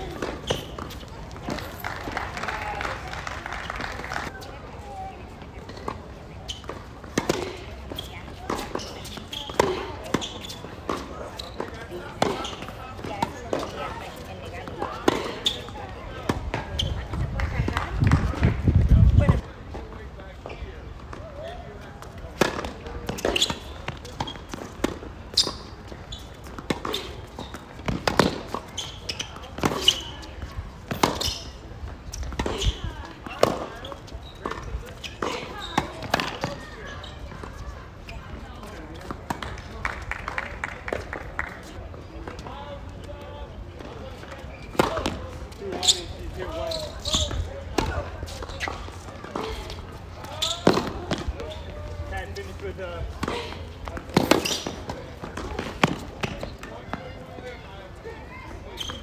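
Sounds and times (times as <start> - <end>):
racket striking tennis ball: 26.5 - 28.7, 50.4 - 51.3, 53.2 - 56.7.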